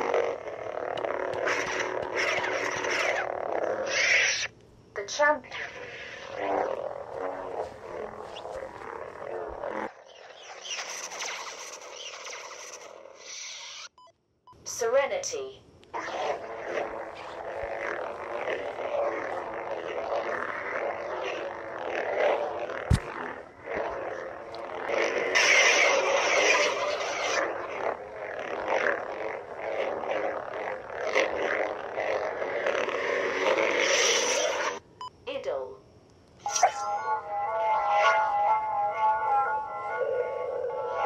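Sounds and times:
lightsaber hum: 0:00.0 - 0:13.9, 0:14.8 - 0:34.8, 0:36.4 - 0:41.0
lightsaber swing swooshes: 0:05.5 - 0:11.8, 0:16.0 - 0:24.1.

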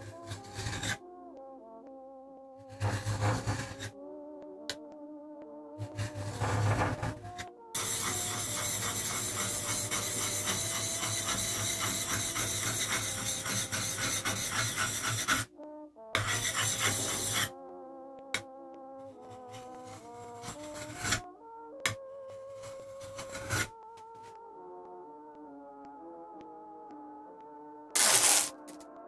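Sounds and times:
steel scraping on whetstone: 0:00.0 - 0:01.0, 0:02.7 - 0:03.9, 0:05.8 - 0:07.2, 0:07.8 - 0:15.5, 0:16.2 - 0:17.5, 0:19.1 - 0:21.2, 0:22.4 - 0:23.7, 0:28.0 - 0:28.7
faint big-band music: 0:05.5 - 0:17.6.

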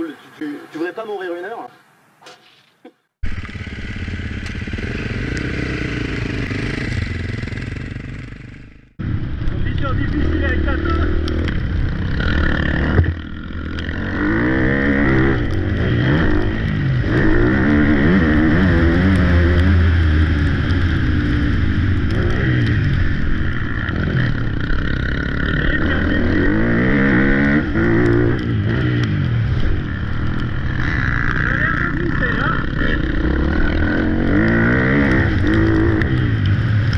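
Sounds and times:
dirt bike engine revving: 0:03.2 - 0:36.9.

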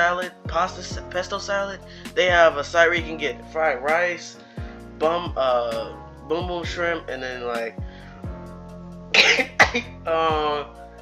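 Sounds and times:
music with sliding bass notes: 0:00.0 - 0:11.0
person coughing: 0:09.2 - 0:10.0.

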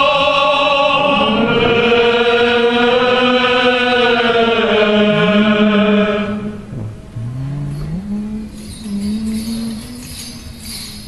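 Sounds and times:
men's choir chanting: 0:00.0 - 0:06.7
low voice sustained note: 0:00.9 - 0:10.7.

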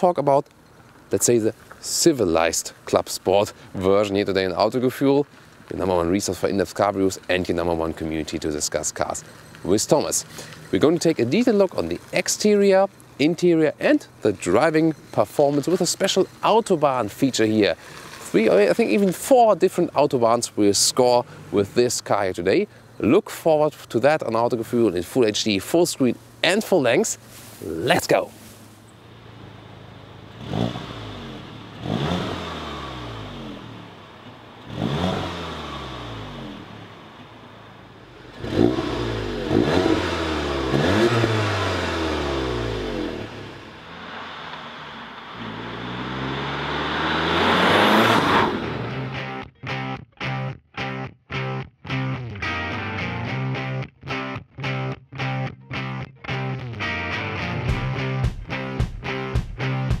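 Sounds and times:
car rushing past: 0:29.0 - 0:49.2
car engine revving: 0:29.0 - 0:49.4
rock music with chopped guitar: 0:48.9 - 1:00.0.

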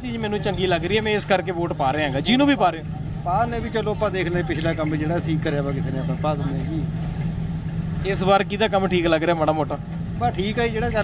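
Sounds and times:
bus engine drone: 0:00.0 - 0:11.0
road noise rumble: 0:00.0 - 0:11.0.

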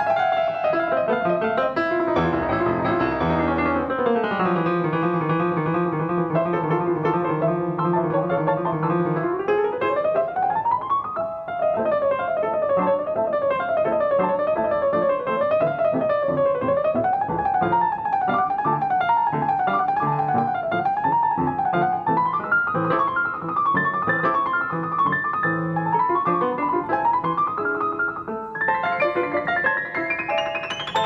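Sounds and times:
solo piano: 0:00.0 - 0:31.0.

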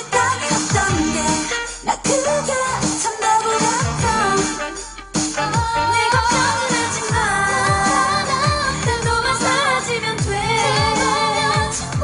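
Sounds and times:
dance beat with sliding bass hits: 0:00.1 - 0:12.0
female vocals: 0:05.6 - 0:12.0.

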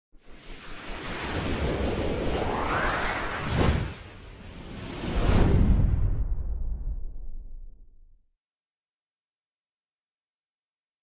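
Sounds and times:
rushing wind-like whoosh: 0:00.2 - 0:07.8.

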